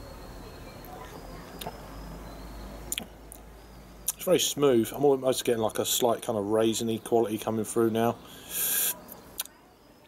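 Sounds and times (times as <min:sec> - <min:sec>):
person hissing breath: 0:08.2 - 0:09.0.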